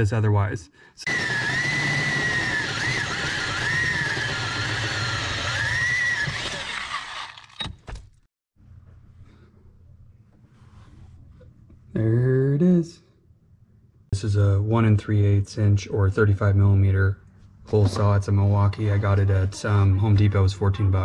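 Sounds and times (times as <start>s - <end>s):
drill cutting through sheet metal: 1.0s - 7.7s
faint low hum: 8.6s - 21.0s.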